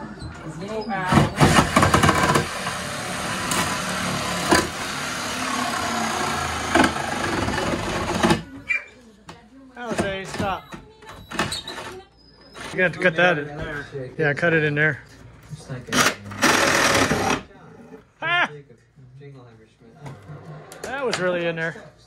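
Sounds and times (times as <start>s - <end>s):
reciprocating saw cutting wood: 1.3s - 8.5s.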